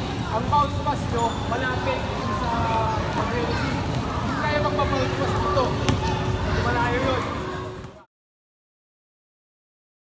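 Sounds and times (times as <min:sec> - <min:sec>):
children chattering in echoing gym: 0:00.0 - 0:08.1
basketball bouncing on gym floor: 0:05.8 - 0:06.2.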